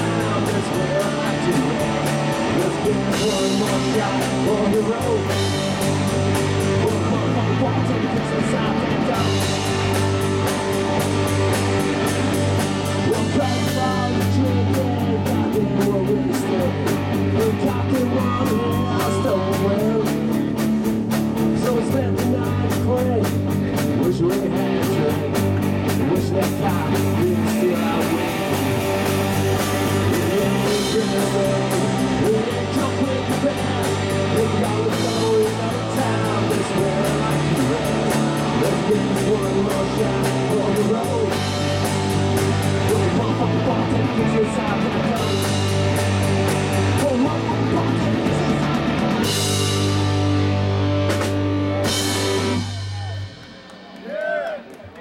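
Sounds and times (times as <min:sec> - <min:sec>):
bass line: 0:00.0 - 0:55.0
electric guitars: 0:00.0 - 0:55.0.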